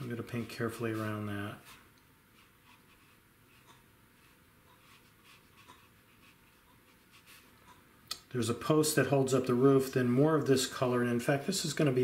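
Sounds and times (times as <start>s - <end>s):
brush scratching on paper: 0.8s - 7.6s.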